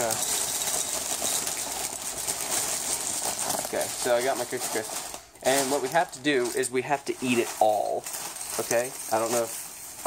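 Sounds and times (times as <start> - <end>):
cereal rattling into a bowl: 0.0 - 10.0
plastic bag crinkling: 0.0 - 10.0.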